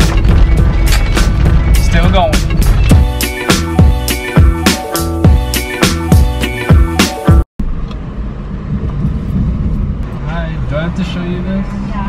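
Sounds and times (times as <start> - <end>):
car cabin rumble: 0.0 - 4.0
music with sharp drum hits: 0.0 - 7.4.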